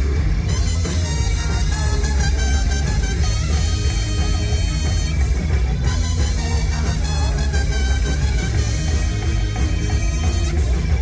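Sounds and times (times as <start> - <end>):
live rock band playing loudly: 0.0 - 11.0.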